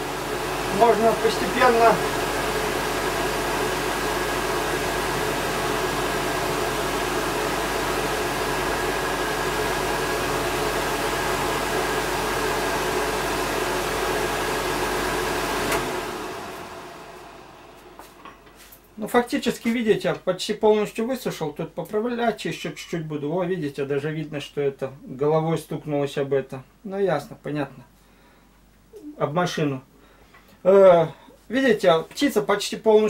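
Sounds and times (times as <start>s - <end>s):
electric hot-air dryer blowing: 0.0s - 18.3s.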